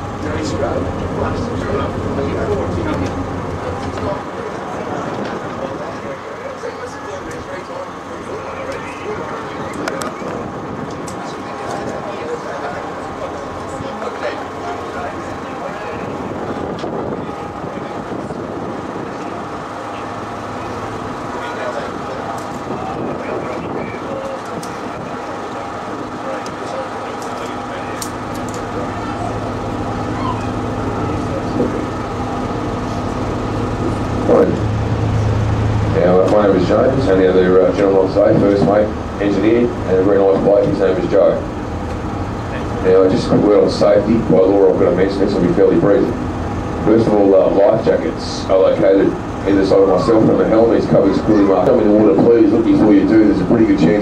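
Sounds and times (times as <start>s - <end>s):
boat engine humming: 0.0s - 54.0s
passengers chattering: 0.0s - 54.0s.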